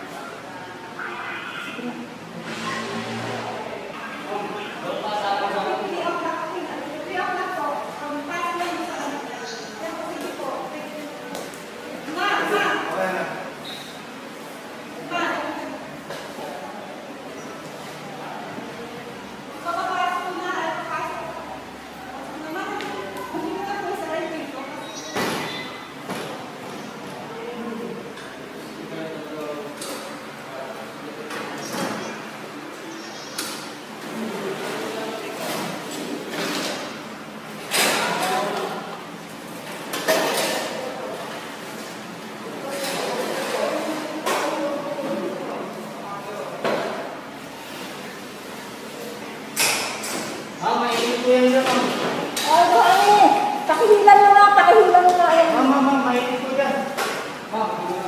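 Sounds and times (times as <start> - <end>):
indistinct voices echoing: 0.0 - 14.3.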